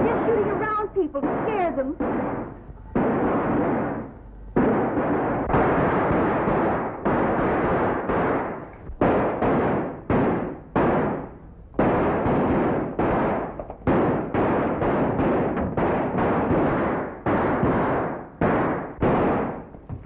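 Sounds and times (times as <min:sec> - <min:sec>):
handgun shots: 0:01.2 - 0:19.7.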